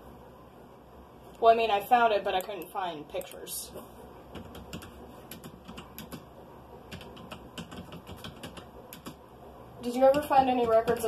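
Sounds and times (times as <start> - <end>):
typing on computer keyboard: 4.3 - 6.3, 6.9 - 9.2, 10.0 - 11.0.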